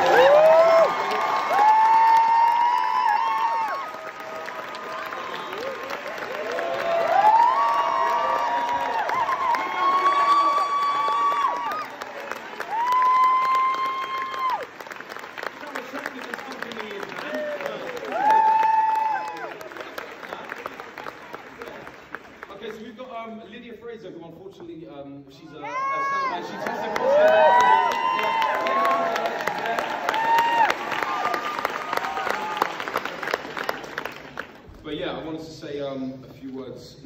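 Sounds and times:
high whoops: 0:00.0 - 0:14.8, 0:17.9 - 0:19.7, 0:25.6 - 0:33.0
audience applauding: 0:00.0 - 0:23.4, 0:25.9 - 0:34.7.

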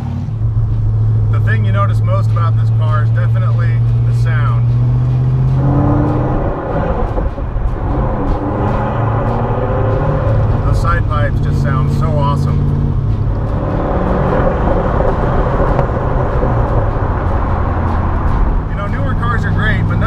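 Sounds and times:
car engine running: 0:00.0 - 0:20.0.

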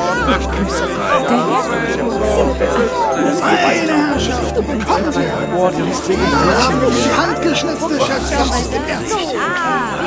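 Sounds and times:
background music: 0:00.0 - 0:10.0
people chattering: 0:00.0 - 0:10.0.

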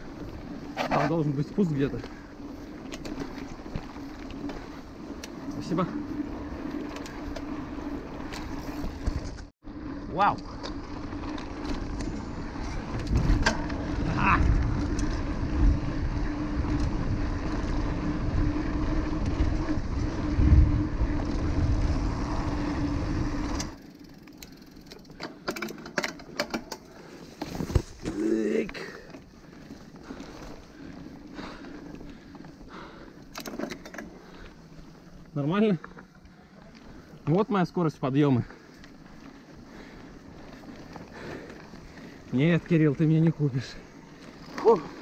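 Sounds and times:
bike clicks and rattles: 0:00.0 - 0:45.0
tyres rolling on dirt: 0:00.0 - 0:45.0
wind buffeting microphone: 0:12.5 - 0:23.7.

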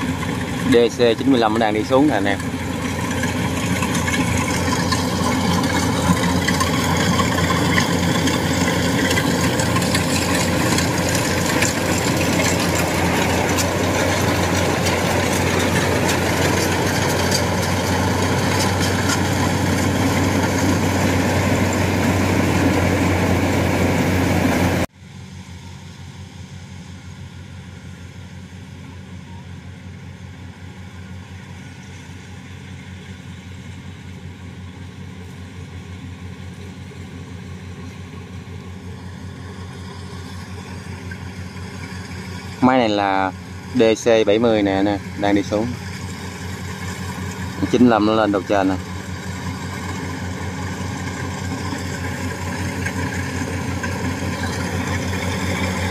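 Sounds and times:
combine harvester diesel drone: 0:00.0 - 0:55.9
distant combine harvester drone: 0:00.0 - 0:55.9.

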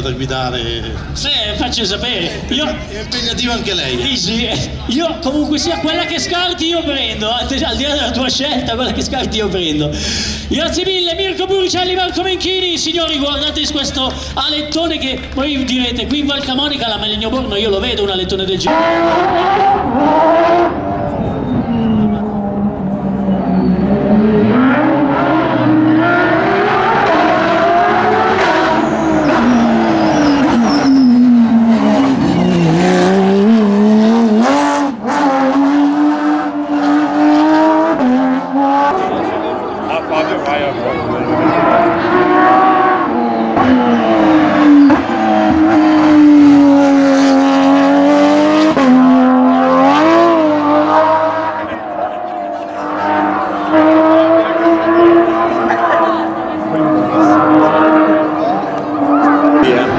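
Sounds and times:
rally car engine revving: 0:10.5 - 0:59.9.

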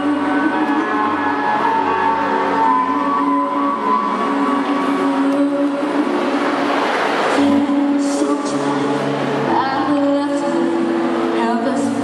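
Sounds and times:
girl singing into microphone: 0:00.0 - 0:06.6, 0:07.3 - 0:12.0
backing track music: 0:00.0 - 0:12.0.

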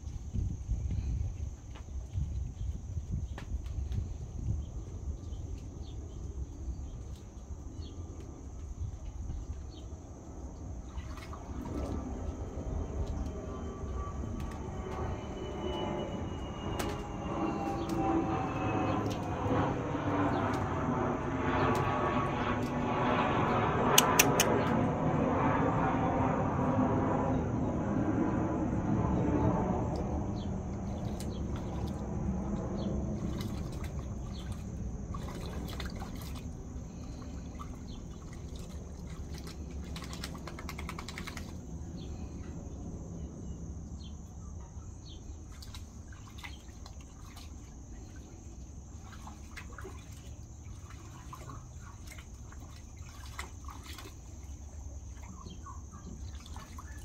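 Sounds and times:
dog splashing in water: 0:10.8 - 0:12.2, 0:33.1 - 0:41.7, 0:45.5 - 0:48.2, 0:48.9 - 0:57.0
loud passing noise: 0:12.7 - 0:36.1
sharp clicks: 0:23.9 - 0:24.8.

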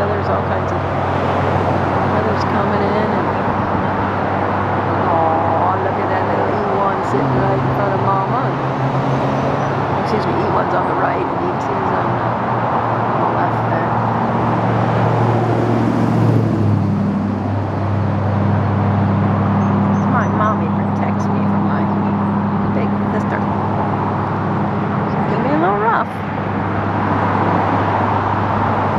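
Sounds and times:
low engine hum: 0:00.0 - 0:28.9
road traffic noise: 0:00.0 - 0:28.9.

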